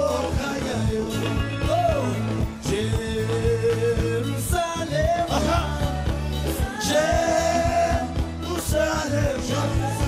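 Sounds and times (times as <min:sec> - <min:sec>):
live band playing: 0:00.0 - 0:10.0
man singing long notes: 0:00.0 - 0:10.0.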